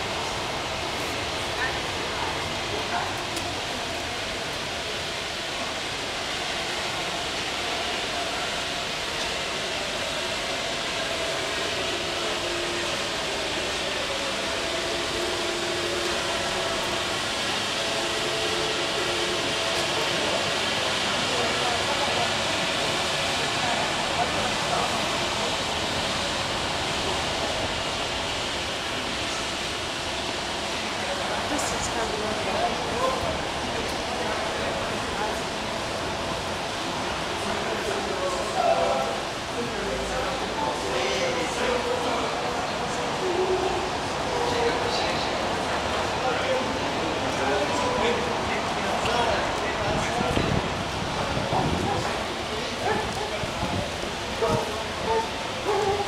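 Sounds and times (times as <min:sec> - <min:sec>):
background street hiss: 0:00.0 - 0:56.0
faint voices: 0:00.0 - 0:56.0.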